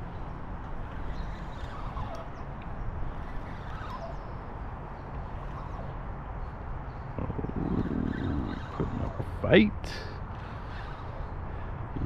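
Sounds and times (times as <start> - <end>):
faint bird chirps: 1.0 - 9.2
low rumbling noise: 6.9 - 12.0.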